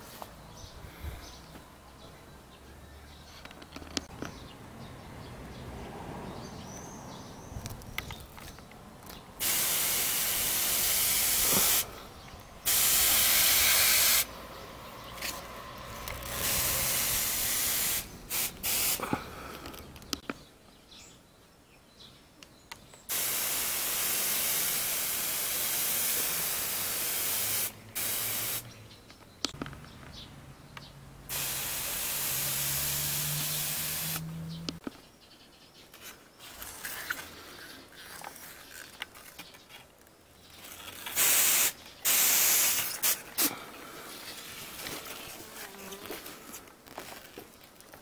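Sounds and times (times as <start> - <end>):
sprayer hissing mist: 9.4 - 11.9, 12.6 - 14.3, 16.2 - 19.0, 23.1 - 28.6, 31.3 - 34.3, 41.2 - 43.2.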